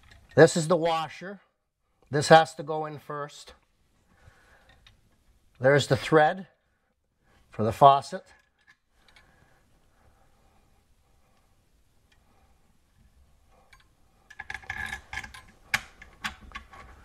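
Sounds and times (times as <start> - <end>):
small clicks and rubbing: 0.0 - 0.4, 8.3 - 9.4, 11.2 - 17.0.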